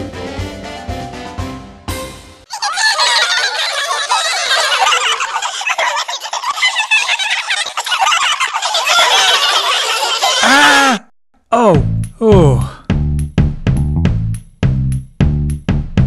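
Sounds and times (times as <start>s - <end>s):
music: 0.0s - 2.5s, 11.8s - 16.0s
high-pitched cartoon laughs: 2.5s - 10.9s.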